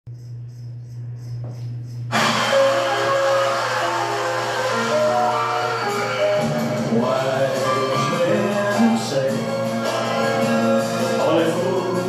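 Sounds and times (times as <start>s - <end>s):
instrumental backing track melody: 2.1s - 12.0s.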